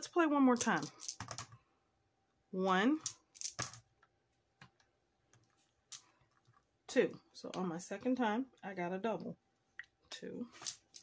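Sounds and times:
dice clicking on paper board: 0.6s - 1.6s, 3.0s - 3.8s, 10.6s - 11.0s.

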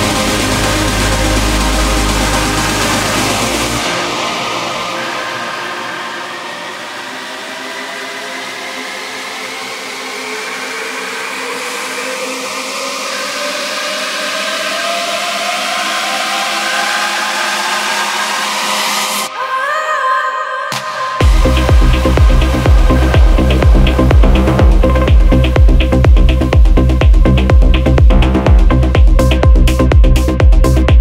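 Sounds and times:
kick and bass: 0.0s - 4.9s, 21.2s - 31.0s
sustained synth tones: 21.2s - 27.4s
rushing noise riser: 21.2s - 29.8s
rising pitch sweep: 21.2s - 30.3s.

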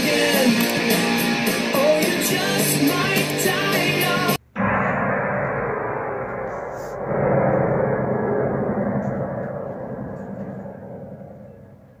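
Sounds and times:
low dense rumbling roar: 4.6s - 12.0s.

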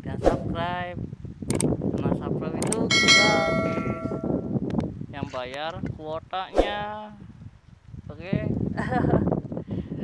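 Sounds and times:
bright bell chime: 2.9s - 4.4s.

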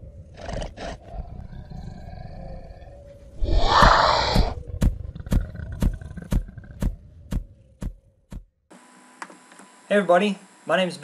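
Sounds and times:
dinosaur harsh calls: 3.4s - 6.8s.

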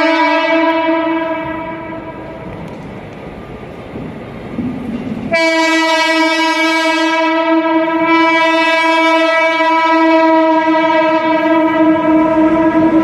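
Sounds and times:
train horn blast: 0.0s - 2.4s, 5.3s - 13.0s
train running: 0.0s - 13.0s.

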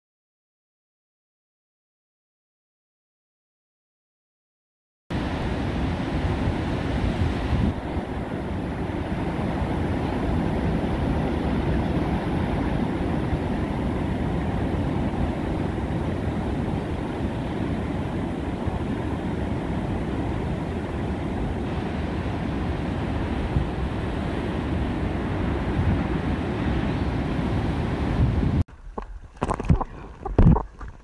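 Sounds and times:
breaking surf: 5.1s - 28.6s
wind buffeting microphone: 5.1s - 31.0s.

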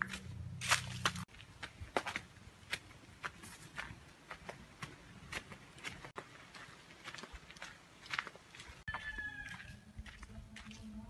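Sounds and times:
footsteps on dry leaves: 0.0s - 11.0s.

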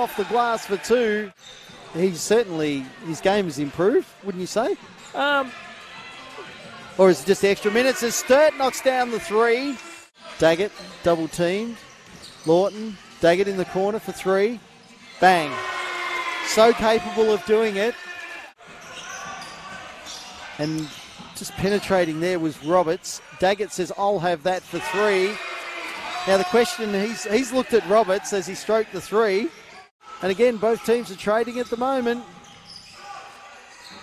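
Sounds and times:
faint crowd and player voices: 0.0s - 34.0s
commentator's voice: 7.0s - 11.7s, 16.4s - 18.0s, 26.2s - 29.6s.

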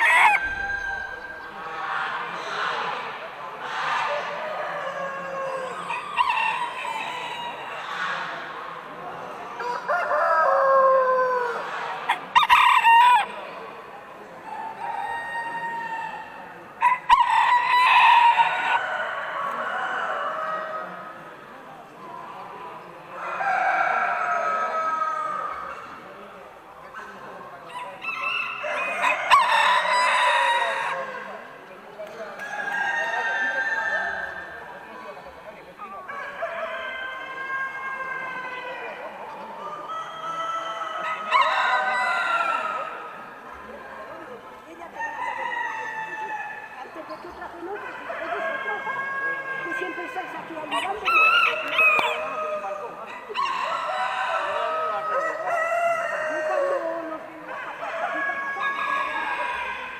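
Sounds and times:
roosters crowing: 0.0s - 8.5s, 9.4s - 13.7s, 14.7s - 21.3s, 23.1s - 26.0s, 27.6s - 31.6s, 32.4s - 34.9s, 35.9s - 44.2s, 44.9s - 46.8s, 47.6s - 59.9s
hens clucking: 0.0s - 59.9s.

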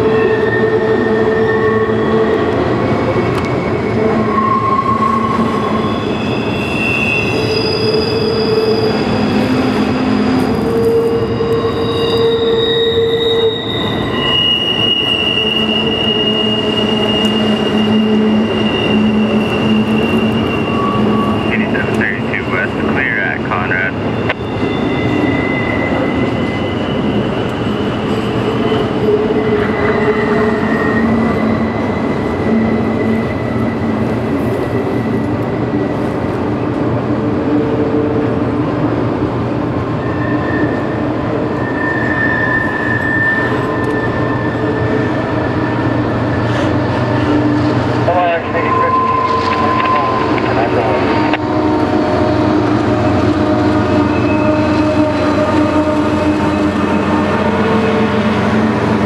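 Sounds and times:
train wheels rumbling on rail: 0.0s - 59.0s
wheels squealing: 3.4s - 22.3s, 24.0s - 36.1s, 39.9s - 47.8s.

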